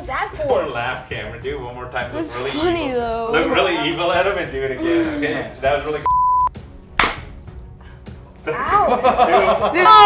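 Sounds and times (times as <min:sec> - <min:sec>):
beep tone: 0:06.0 - 0:06.6
sharp smack: 0:07.0 - 0:07.4.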